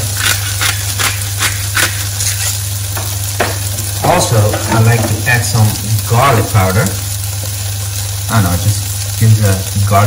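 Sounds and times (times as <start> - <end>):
pepper mill grinding: 0.0 - 2.7
eggs and vegetables sizzling in pans: 0.0 - 10.0.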